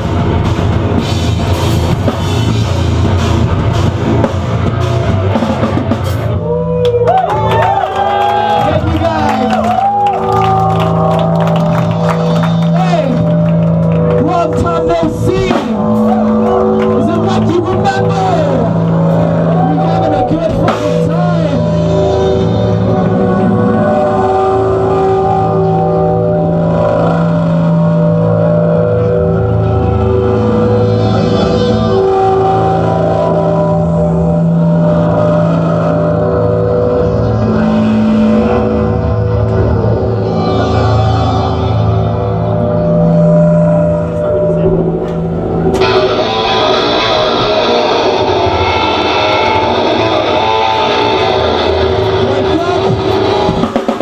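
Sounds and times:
drums and cymbals: 0:00.0 - 0:06.6, 0:15.0 - 0:16.6, 0:20.2 - 0:23.5, 0:45.8 - 0:54.0
distorted electric guitars and bass: 0:00.0 - 0:54.0
live metal band playing: 0:00.0 - 0:54.0.

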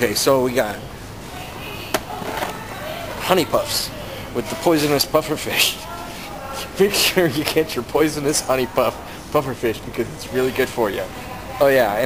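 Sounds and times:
faint voices: 0:00.0 - 0:12.0
supermarket background noise: 0:00.0 - 0:12.0.

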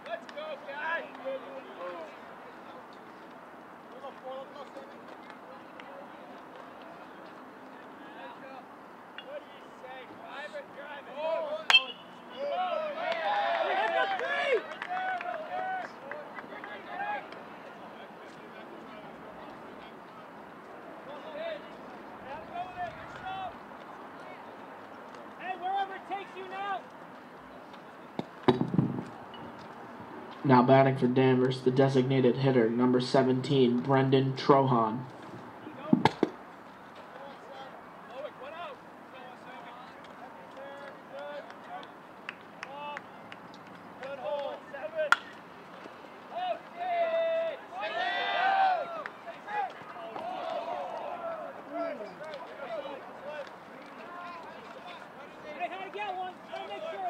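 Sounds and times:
cheering and shouting: 0:11.0 - 0:17.4, 0:46.2 - 0:57.0
metal bat hitting ball: 0:11.7 - 0:12.2, 0:45.1 - 0:45.3.

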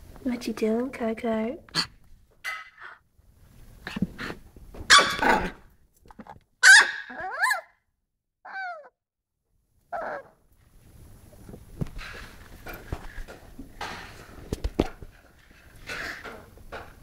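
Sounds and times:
puppy barking high yaps: 0:01.8 - 0:03.0, 0:04.9 - 0:05.6, 0:06.6 - 0:07.8, 0:08.5 - 0:08.9.

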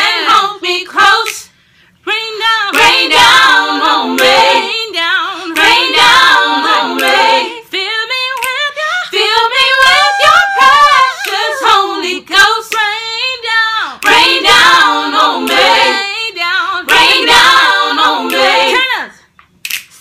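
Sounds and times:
unaccompanied gospel singing: 0:00.0 - 0:19.1.

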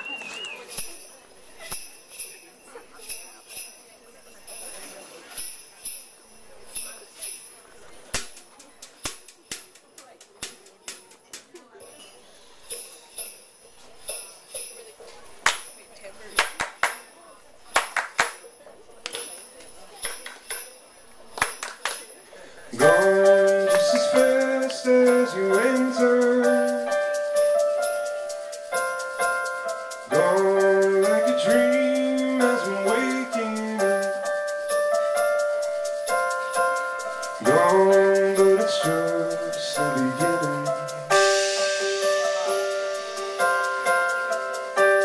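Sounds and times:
light jingling: 0:22.8 - 0:41.5.

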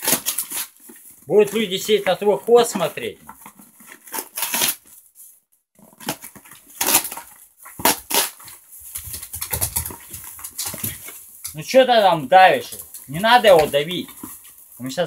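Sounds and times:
plastic packaging crinkling: 0:00.0 - 0:15.0.

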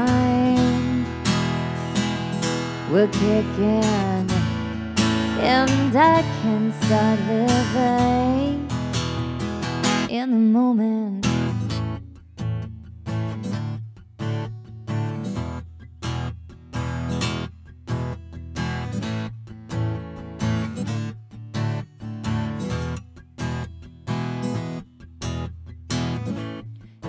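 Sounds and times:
acoustic guitar strumming: 0:00.0 - 0:10.2, 0:11.2 - 0:27.0.

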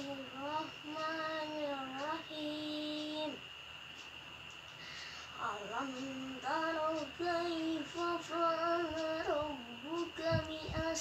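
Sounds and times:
boy chanting melodically: 0:00.0 - 0:03.5, 0:04.8 - 0:11.0.

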